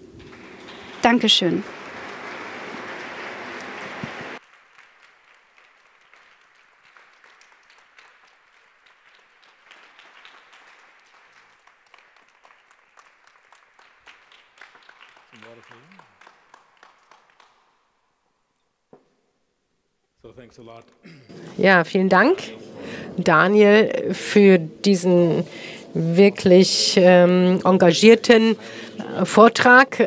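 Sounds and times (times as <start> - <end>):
scattered claps and clicks: 0.0 - 17.8
audience applauding: 0.0 - 17.9.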